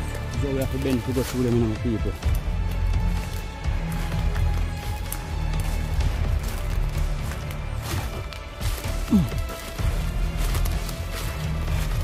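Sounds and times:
background music with bass line: 0.0s - 12.0s
dry leaves and twigs crackling underfoot: 0.0s - 12.0s.

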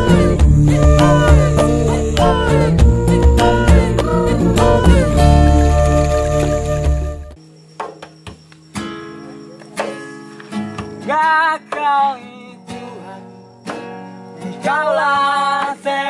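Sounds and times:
man singing: 0.0s - 5.4s, 11.1s - 13.3s, 14.6s - 16.0s
acoustic guitar chords: 0.0s - 7.4s, 8.2s - 16.0s.

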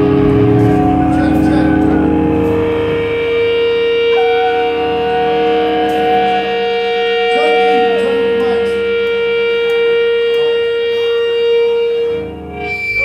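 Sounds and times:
ska punk band sustained notes: 0.0s - 13.0s.

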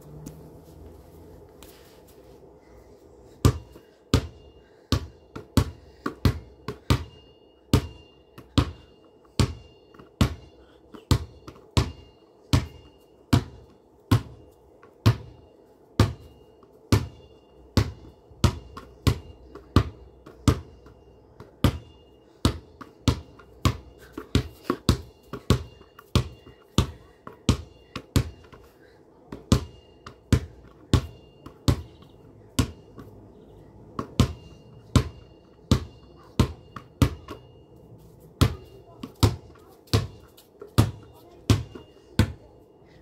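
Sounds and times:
basketball bouncing: 11.1s - 14.4s, 17.8s - 20.8s, 21.6s - 28.6s, 29.4s - 33.1s, 34.0s - 37.5s, 38.4s - 42.4s.

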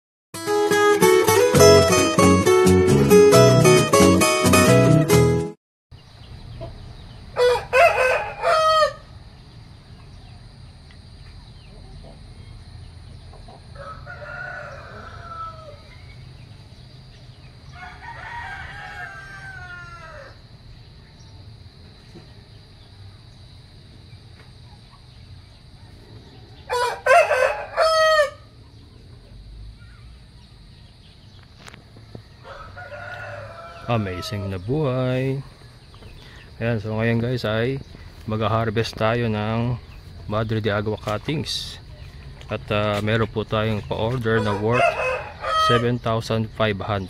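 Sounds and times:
rooster crowing: 7.3s - 9.3s, 13.6s - 16.2s, 17.7s - 20.5s, 25.7s - 28.6s, 32.1s - 36.5s, 44.3s - 46.0s.

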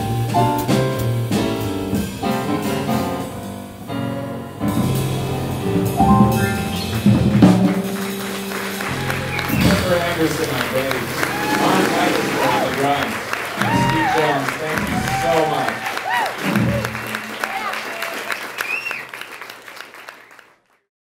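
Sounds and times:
audience applauding: 6.5s - 20.9s.

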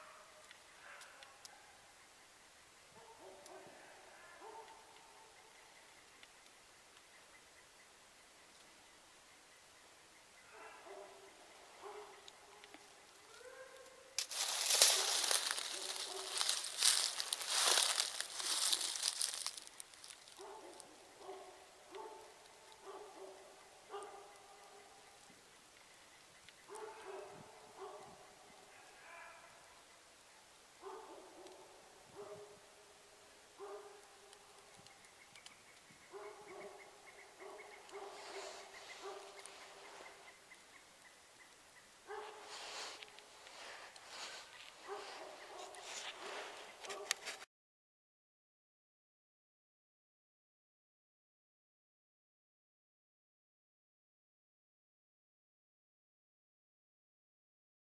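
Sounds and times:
hounds baying: 3.0s - 5.8s, 10.4s - 19.7s, 20.3s - 25.2s, 26.7s - 29.7s, 33.6s - 34.7s, 36.1s - 40.4s, 42.1s - 47.2s
loud rustling near microphone: 14.2s - 20.4s.

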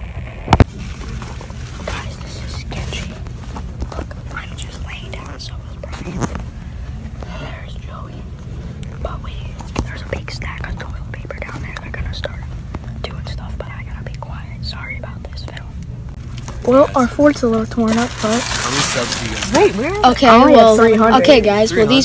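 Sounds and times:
steady low hum: 0.0s - 22.0s
hushed whispering: 1.8s - 3.2s, 3.9s - 6.4s, 7.2s - 8.3s, 9.0s - 15.8s
person speaking: 16.6s - 22.0s.

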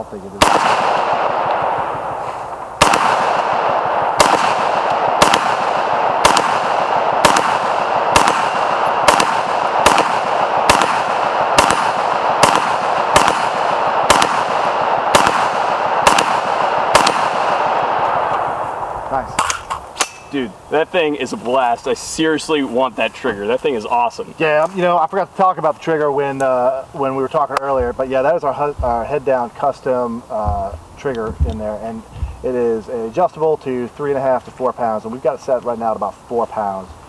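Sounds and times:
rifle firing semi-automatic shots: 0.4s - 20.2s.

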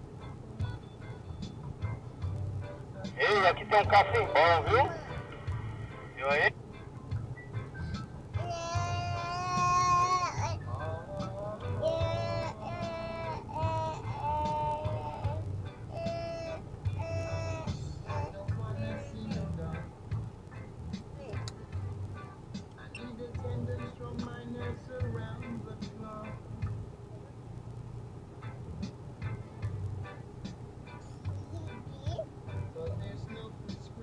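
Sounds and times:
pop music: 3.0s - 6.5s, 18.0s - 19.9s.

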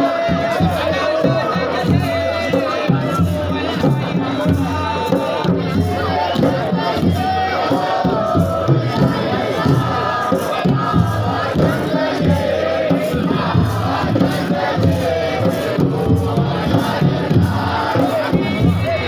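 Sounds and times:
men chanting and singing: 0.0s - 19.0s
steady drumbeat: 0.0s - 19.0s.

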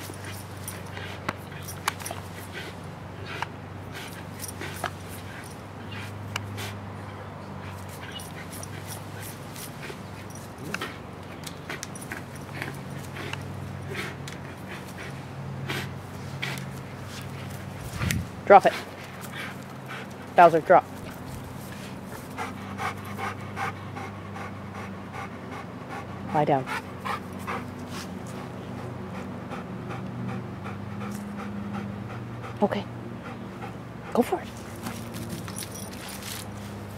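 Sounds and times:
dog panting hard: 0.0s - 36.9s.

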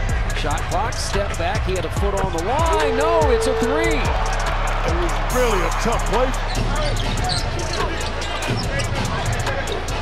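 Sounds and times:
low music bass: 0.0s - 7.3s.

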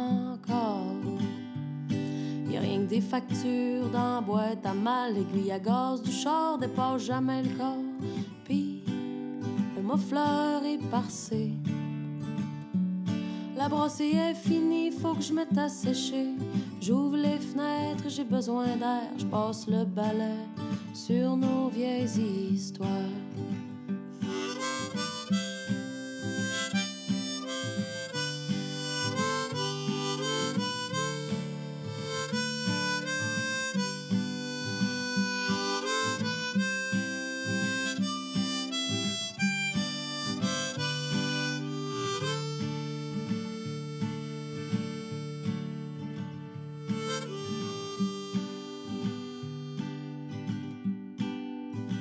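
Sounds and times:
strummed acoustic guitar: 0.0s - 52.0s
harmonica solo: 24.2s - 50.3s.

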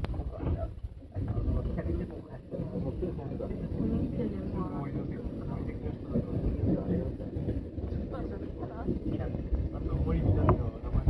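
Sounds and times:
electric train rumbling: 0.0s - 11.0s
faint indistinct voices: 0.0s - 11.0s.

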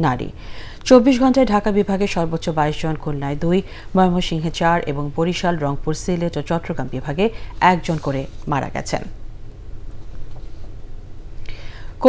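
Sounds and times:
woman speaking: 0.0s - 9.2s
low steady hum: 0.0s - 12.0s
faint breath: 0.4s - 0.8s, 11.4s - 12.0s.

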